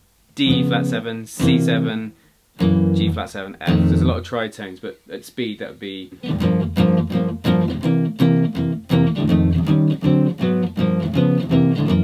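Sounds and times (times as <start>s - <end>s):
clean guitar chord stabs: 0.4s - 4.2s.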